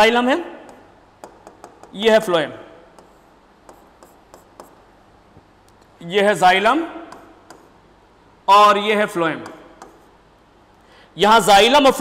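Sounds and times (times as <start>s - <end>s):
pen tapping on a board: 0.7s - 2.0s, 7.1s - 7.7s, 9.4s - 10.0s
pen scratching on a board: 3.0s - 4.8s.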